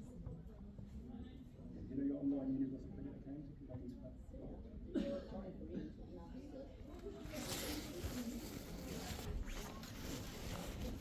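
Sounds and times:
cloth rubbing on microphone: 6.9 - 11.0.

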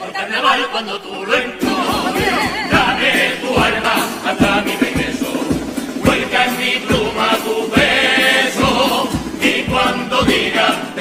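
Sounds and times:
choir singing in harmony: 0.0 - 11.0
regular drum beat: 1.2 - 11.0.

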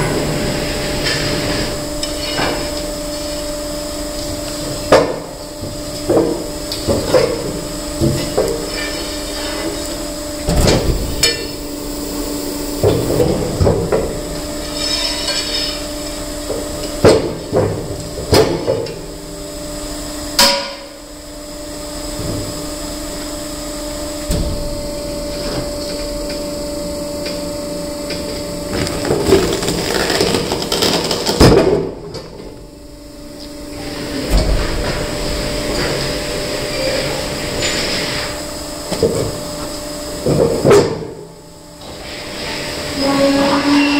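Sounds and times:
machine humming: 0.0 - 40.6.

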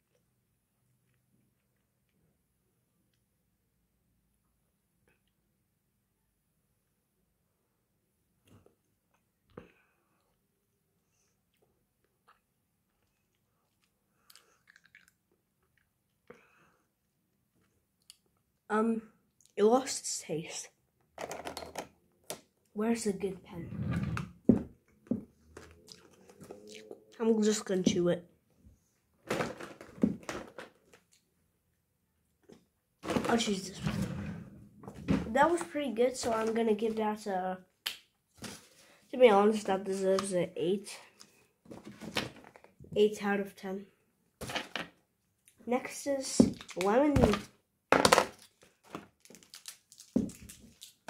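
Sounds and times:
wrapped candies clicking and crackling: 48.2 - 51.0.

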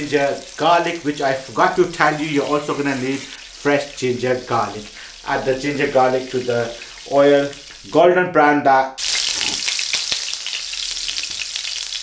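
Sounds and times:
garlic sizzling in hot oil: 0.0 - 8.0, 9.0 - 12.0.

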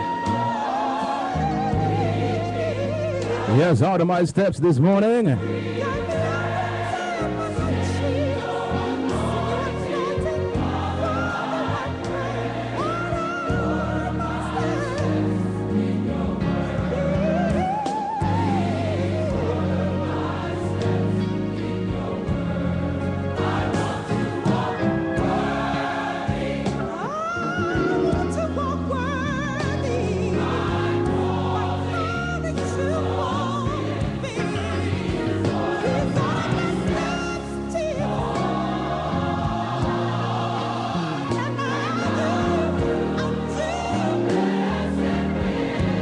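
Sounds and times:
choir singing gospel music: 0.0 - 46.0.

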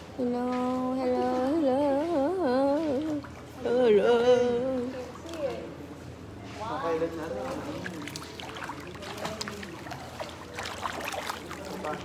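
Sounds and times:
woman humming: 0.2 - 5.0.

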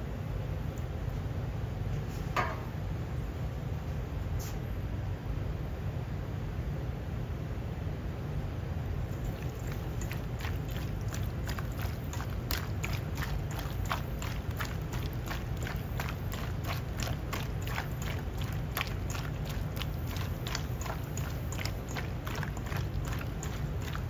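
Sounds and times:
steady low hum: 0.0 - 24.0
meat squelching and slapping: 9.2 - 24.0.

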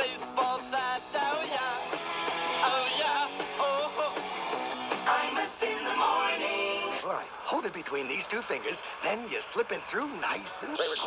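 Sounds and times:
person singing: 0.0 - 1.9, 2.6 - 4.2, 5.0 - 7.0
guitar rock accompaniment: 0.0 - 7.0.

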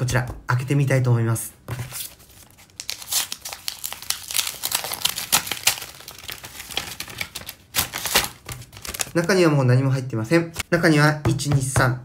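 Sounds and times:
envelope paper tearing: 2.0 - 9.2.

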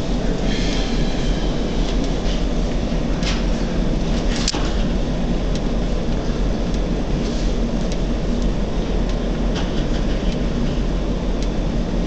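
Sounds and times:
ship engines rumbling: 0.0 - 12.0.

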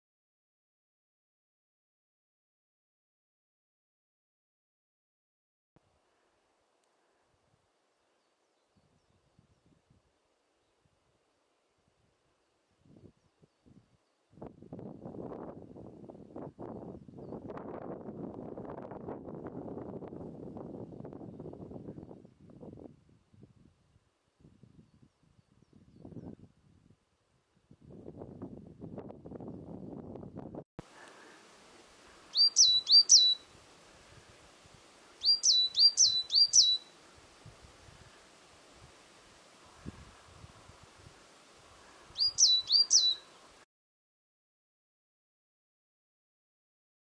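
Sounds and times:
wind buffeting microphone: 12.8 - 27.0, 27.6 - 30.6, 39.7 - 41.2
songbird singing high quick notes: 32.3 - 33.5, 35.2 - 36.9, 42.2 - 43.3.

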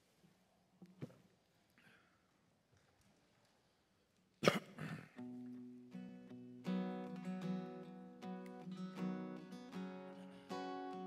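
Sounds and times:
person coughing: 4.4 - 5.2.

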